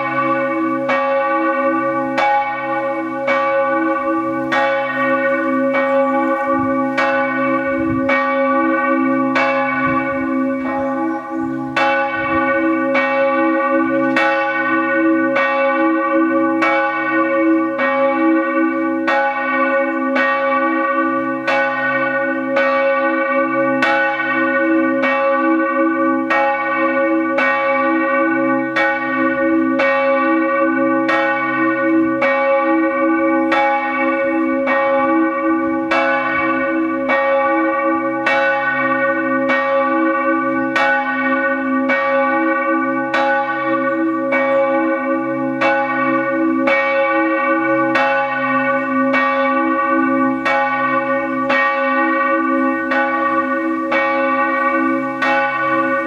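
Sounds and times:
church bell ringing: 0:00.0 - 0:56.0.

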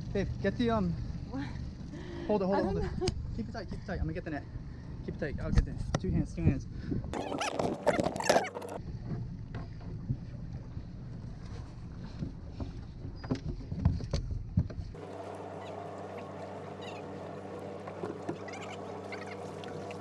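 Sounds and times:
outboard engine drone: 0:00.0 - 0:05.1, 0:14.8 - 0:20.0.

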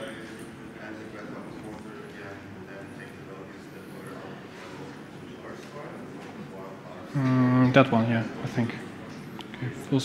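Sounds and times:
murmured voices: 0:00.0 - 0:10.0.

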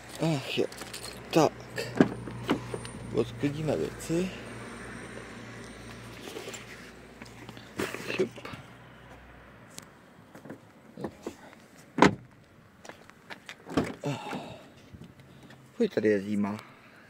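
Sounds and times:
rustling and small clunks: 0:00.0 - 0:03.0, 0:06.2 - 0:15.6
car door shutting: 0:01.8 - 0:02.9, 0:12.0 - 0:12.3, 0:13.7 - 0:14.6.

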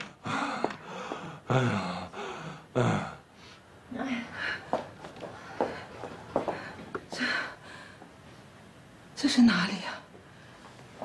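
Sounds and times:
person gasping heavy breaths: 0:00.2 - 0:03.6.

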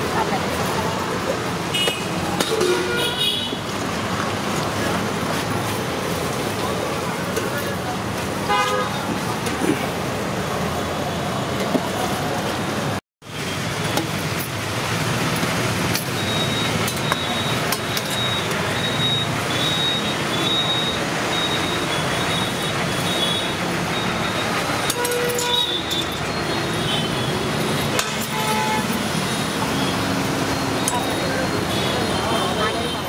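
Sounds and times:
people talking: 0:00.0 - 0:02.8, 0:06.5 - 0:08.3, 0:30.7 - 0:33.0
steady traffic noise: 0:00.0 - 0:33.0.

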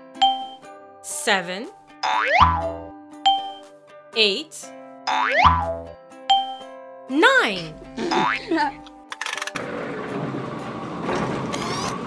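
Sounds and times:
children's background music: 0:00.0 - 0:09.1
cartoon springy boing: 0:02.0 - 0:02.9, 0:05.1 - 0:06.6.

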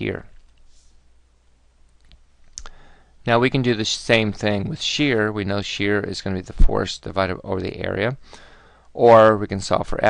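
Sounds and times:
room hiss: 0:00.0 - 0:10.0
faint sharp clicks: 0:01.8 - 0:02.8.

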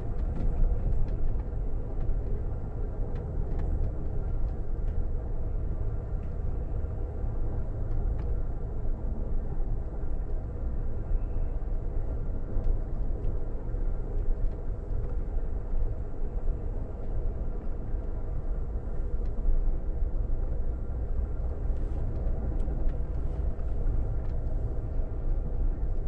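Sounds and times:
train coach rumbling on track: 0:00.0 - 0:26.0.

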